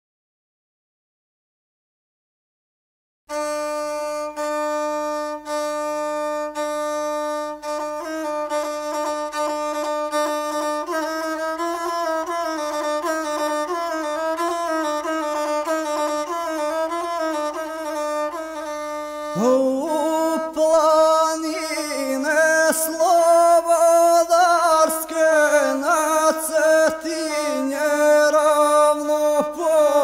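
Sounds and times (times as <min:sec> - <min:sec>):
bowed single-string fiddle melody: 0:03.3 - 0:30.0
man singing: 0:19.3 - 0:30.0.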